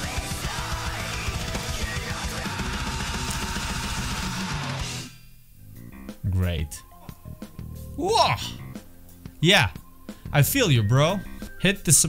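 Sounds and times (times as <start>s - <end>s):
drum kit with fast double-bass kicks: 0.0s - 5.1s
metal guitars: 0.0s - 9.7s.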